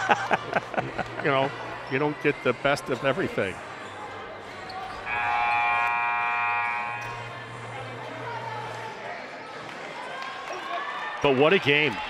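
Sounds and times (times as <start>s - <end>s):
crowd murmur: 0.0s - 11.2s
scoreboard horn buzzing: 5.0s - 8.8s.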